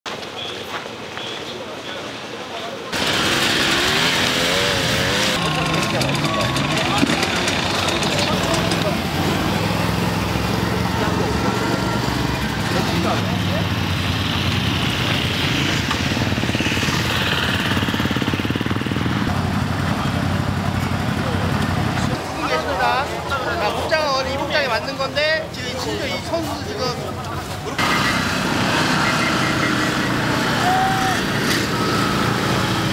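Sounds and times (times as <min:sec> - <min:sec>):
people talking: 0:00.2 - 0:03.0, 0:05.3 - 0:15.4, 0:19.2 - 0:32.9
atv engines running: 0:02.9 - 0:32.9.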